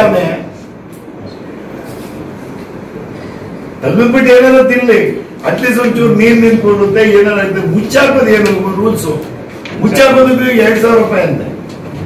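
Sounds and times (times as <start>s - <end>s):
meeting hall background noise: 0.0s - 12.0s.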